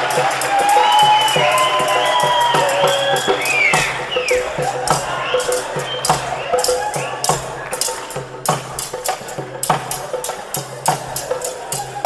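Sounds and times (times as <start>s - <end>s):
dhol drum beating: 0.0s - 12.0s.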